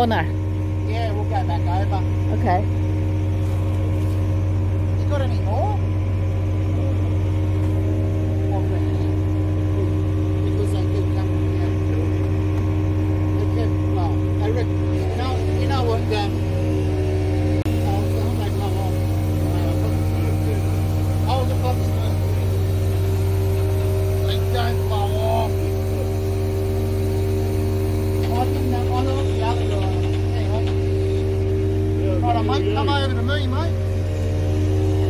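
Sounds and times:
heavy machine engine running: 0:00.0 - 0:35.0.

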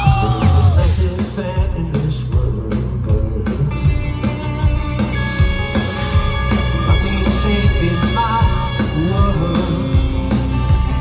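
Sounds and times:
drums keeping a steady beat: 0:00.0 - 0:11.0
electric guitar: 0:00.0 - 0:11.0.

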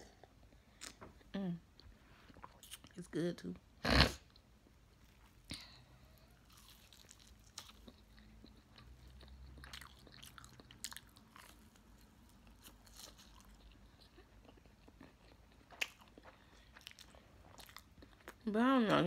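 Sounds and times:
person biting and chewing: 0:06.4 - 0:18.4.

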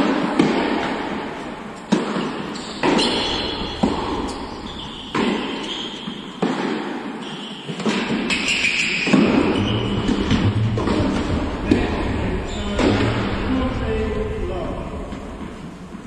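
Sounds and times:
tennis ball bouncing on hard court: 0:00.1 - 0:01.2, 0:01.8 - 0:12.1
tennis ball struck by rackets: 0:00.1 - 0:01.2, 0:01.9 - 0:07.1, 0:07.7 - 0:12.1.

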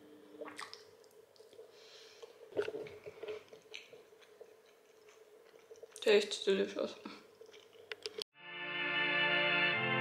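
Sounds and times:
faint steady hum: 0:00.0 - 0:08.1.

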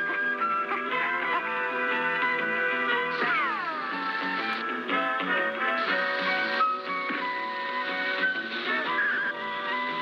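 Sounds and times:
cartoon background music: 0:00.0 - 0:10.0.

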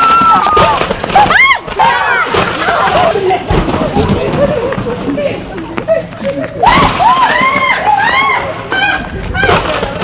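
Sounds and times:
women shrieking and squealing: 0:00.0 - 0:03.4, 0:06.2 - 0:10.0.

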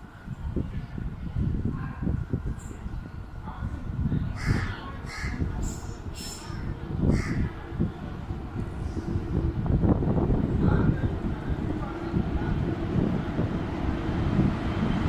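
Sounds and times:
continuous low rumble: 0:03.5 - 0:15.0
crows cawing: 0:04.4 - 0:05.4, 0:06.4 - 0:07.5.

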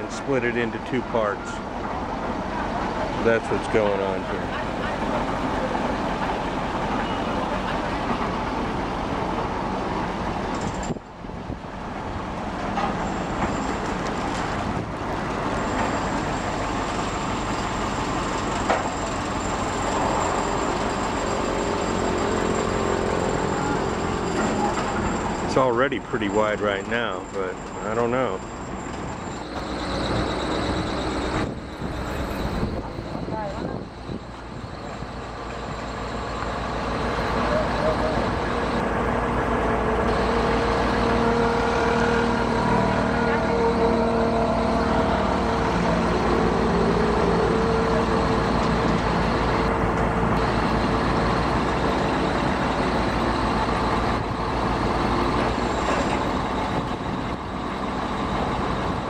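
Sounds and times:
construction machinery engines running: 0:00.0 - 0:59.0.

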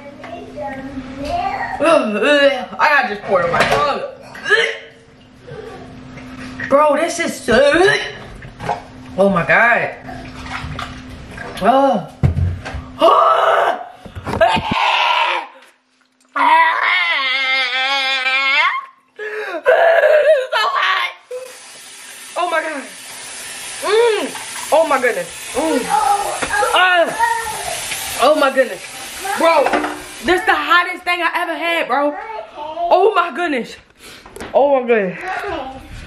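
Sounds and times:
person wailing in pain: 0:13.0 - 0:15.6, 0:16.4 - 0:21.5.

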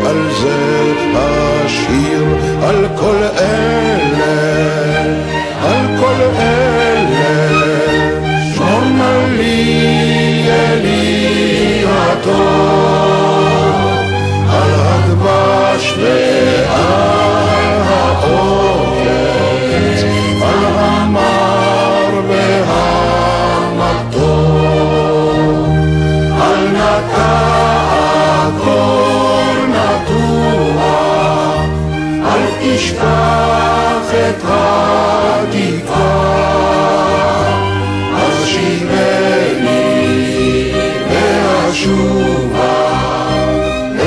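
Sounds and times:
choir singing: 0:00.0 - 0:44.0
orchestral strings and bass: 0:00.0 - 0:44.0.

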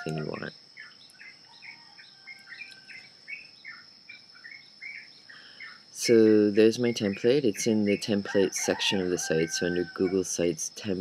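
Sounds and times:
faint bird chirping: 0:00.0 - 0:08.5.

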